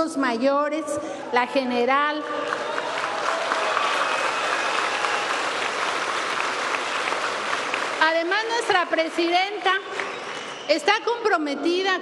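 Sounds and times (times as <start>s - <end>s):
large crowd applauding: 2.2s - 10.9s.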